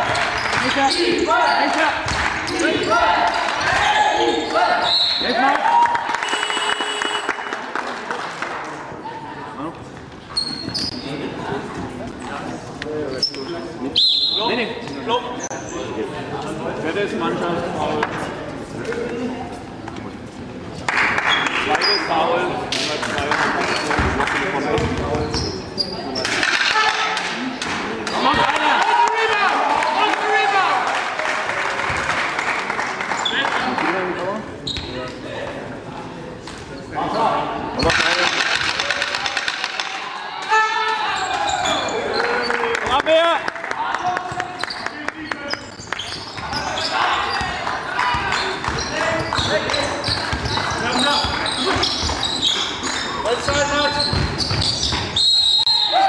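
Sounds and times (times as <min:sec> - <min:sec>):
voices of players and spectators: 0:00.0 - 0:56.0
basketball bouncing on court: 0:24.8 - 0:25.5, 0:47.4 - 0:52.3, 0:53.4 - 0:55.2.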